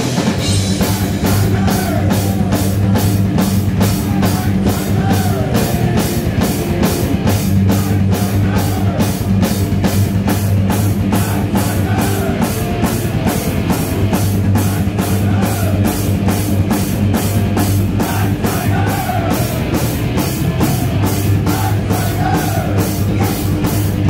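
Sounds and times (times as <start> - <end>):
drum kit pounding: 0.0 - 24.0
heavy metal band playing: 0.0 - 24.0.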